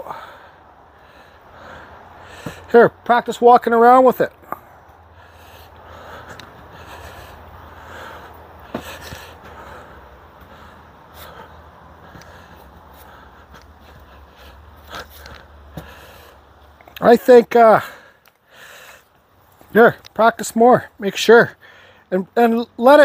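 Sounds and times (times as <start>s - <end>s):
steady low hum: 0.0s - 17.0s
shuffling footsteps: 6.2s - 16.3s.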